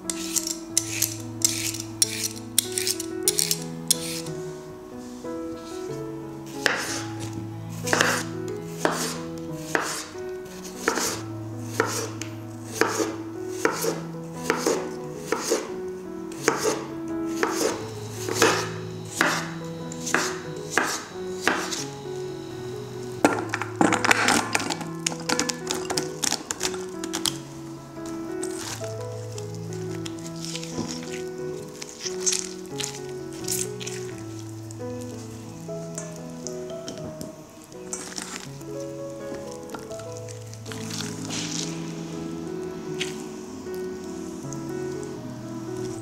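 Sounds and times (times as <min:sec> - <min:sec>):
background music sustained notes: 0:00.0 - 0:46.0
knife slicing on cutting board: 0:08.8 - 0:10.1, 0:12.8 - 0:15.6.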